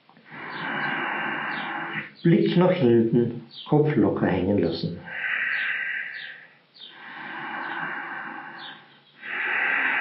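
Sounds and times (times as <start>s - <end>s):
man breathing out: 0.2s - 2.1s, 5.1s - 10.0s.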